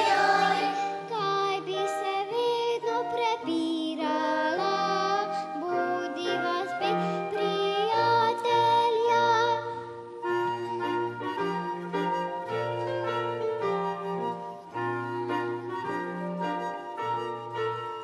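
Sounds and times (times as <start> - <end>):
woodwind melody: 0.0 - 1.5, 4.0 - 18.0
girl singing with vibrato: 0.0 - 10.0.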